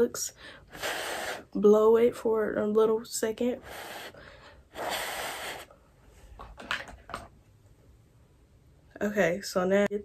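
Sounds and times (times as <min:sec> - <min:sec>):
person blowing: 0:00.7 - 0:01.6, 0:03.6 - 0:05.8.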